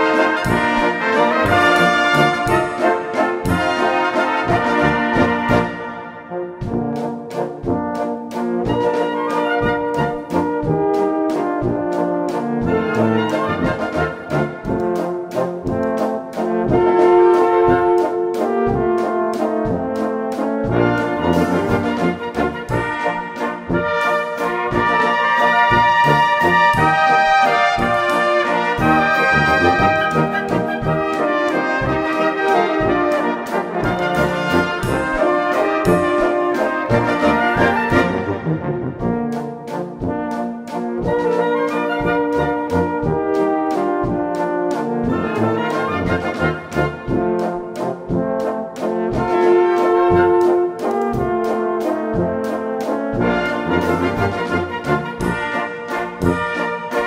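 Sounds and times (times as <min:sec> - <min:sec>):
brass band playing a waltz: 0:00.0 - 0:57.0.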